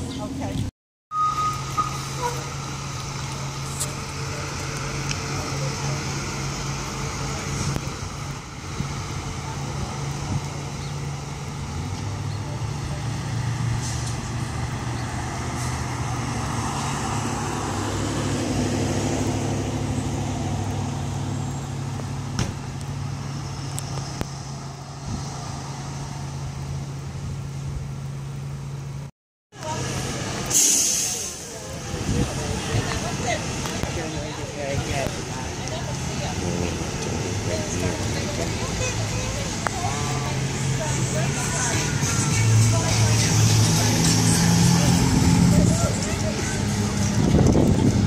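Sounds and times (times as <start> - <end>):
bus engines running: 0.0 - 48.0
air brakes hissing: 30.4 - 31.6.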